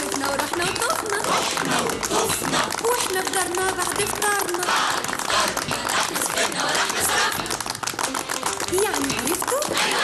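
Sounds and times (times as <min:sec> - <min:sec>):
music with woman singing: 0:00.0 - 0:10.0
people clapping gloved hands: 0:00.0 - 0:10.0.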